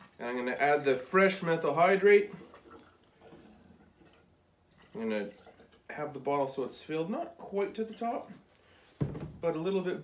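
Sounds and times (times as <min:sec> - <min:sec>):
faint liquid trickle: 0:00.0 - 0:08.9.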